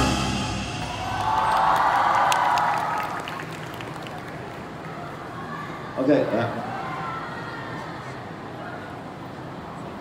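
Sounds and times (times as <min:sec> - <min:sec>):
audience applause: 0:00.8 - 0:04.7.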